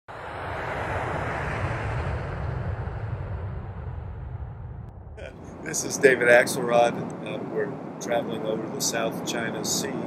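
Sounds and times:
deep rumble: 0.1s - 8.8s
jet engine rushing: 0.1s - 10.0s.

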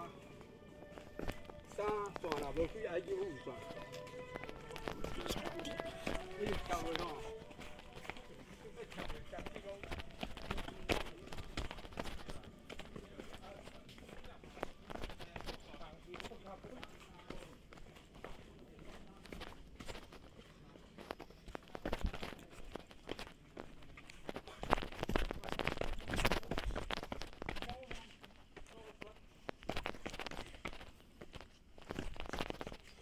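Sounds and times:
footsteps running on rocky trail: 0.9s - 33.0s.

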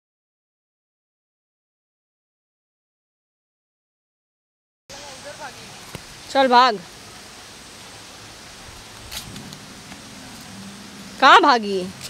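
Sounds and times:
outdoor background hiss: 4.9s - 12.0s.

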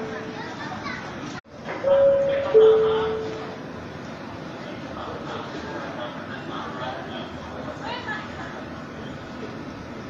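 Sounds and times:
crowd chatter: 0.0s - 10.0s
children's voices: 0.2s - 1.4s
two-note pa chime: 1.9s - 3.5s.

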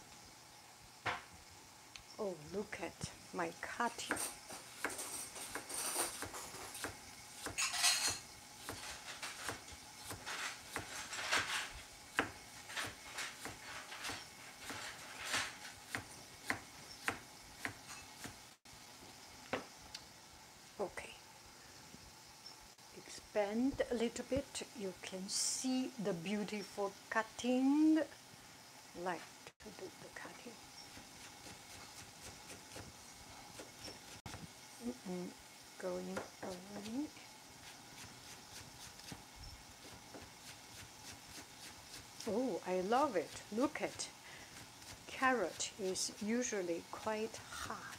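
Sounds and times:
knife scraping: 4.1s - 18.4s, 30.7s - 34.3s, 37.6s - 42.4s.

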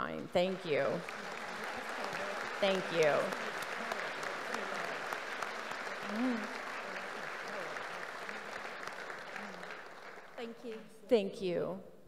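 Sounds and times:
audience applauding: 0.3s - 10.9s
person cheering: 1.1s - 8.8s.

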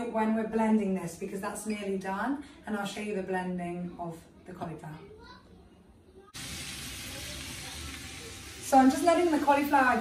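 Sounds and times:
vegetables sizzling in a pan: 6.3s - 10.0s.

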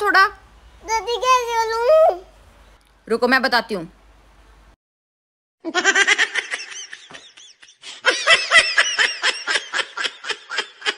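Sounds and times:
high-pitched snickering laughter: 5.7s - 10.9s.

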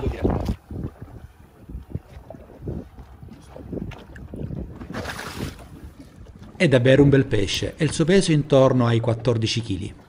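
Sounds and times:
wind gusting on microphone: 0.0s - 8.5s
water slapping against boat: 0.0s - 10.0s.

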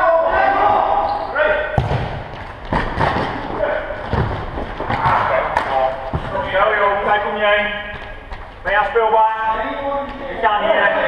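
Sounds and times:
players shouting: 0.0s - 1.8s
ball thudding on hall floor: 1.8s - 6.6s.

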